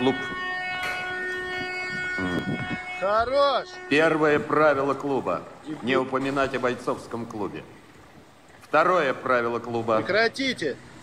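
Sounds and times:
droning tone: 0.0s - 7.0s.

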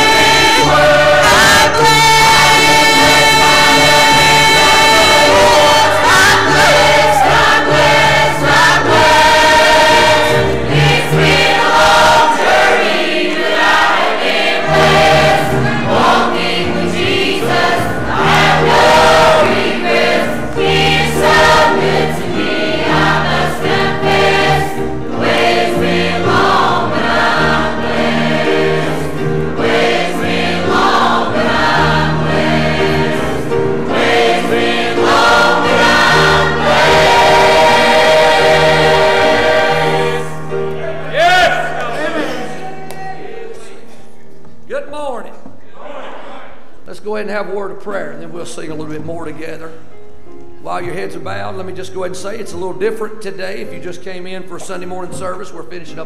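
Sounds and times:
instrumental accompaniment: 0.0s - 42.9s
choir singing gospel: 0.0s - 44.2s.

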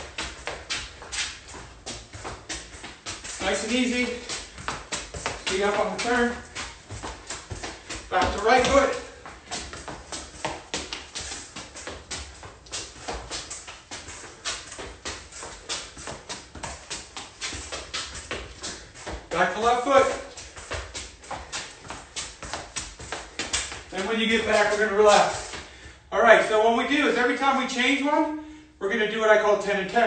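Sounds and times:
sneaker scuffs on concrete: 0.0s - 25.9s
soccer ball tapping against shoe: 0.0s - 25.9s.

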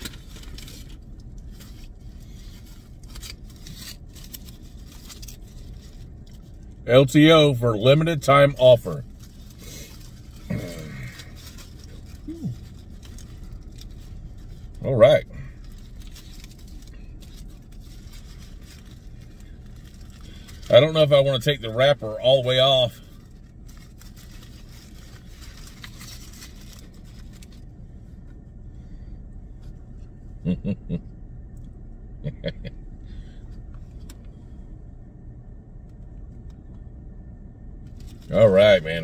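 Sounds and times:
foil wrapper crinkling: 0.0s - 7.2s, 7.8s - 27.7s, 37.9s - 39.0s
steady low hum: 0.0s - 39.0s.

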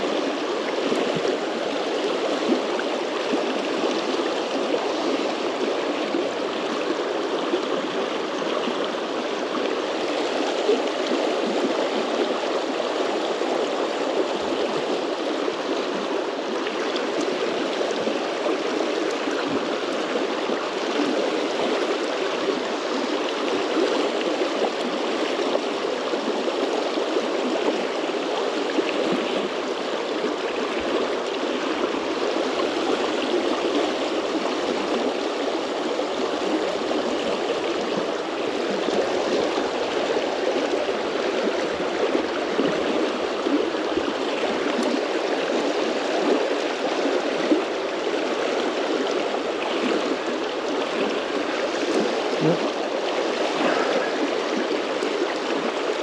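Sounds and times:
river water rushing over stones: 0.0s - 56.0s.

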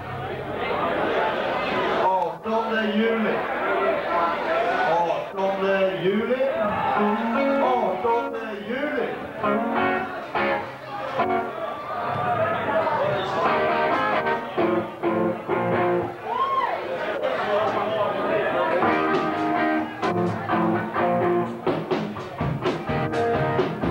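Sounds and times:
crowd voices: 0.0s - 23.9s
electric guitar with bent notes: 9.2s - 16.2s, 18.7s - 23.9s.

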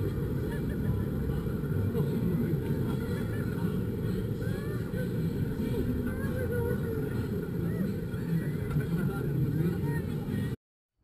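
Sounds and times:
faint voices: 0.0s - 10.6s
low rumbling ride noise: 0.0s - 10.6s.

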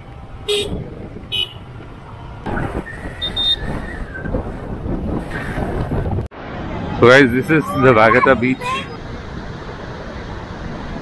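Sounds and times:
motorbike riding noise: 0.0s - 7.2s
wind on microphone: 2.4s - 6.3s.

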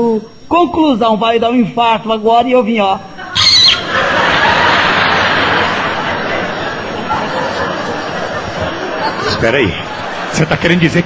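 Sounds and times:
high squeal: 3.2s - 4.2s
crowd laughter: 3.2s - 11.0s.

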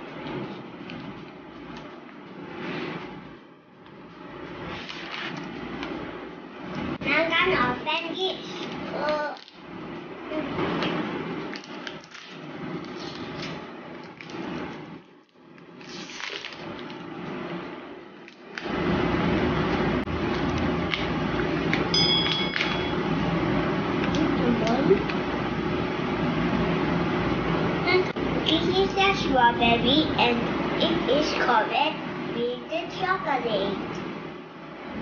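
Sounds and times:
steady hum: 0.0s - 35.0s.

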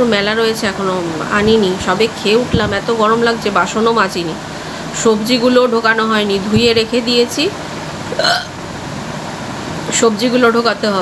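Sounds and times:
steady room hum: 0.0s - 11.0s
woman hiccuping: 8.1s - 8.5s.

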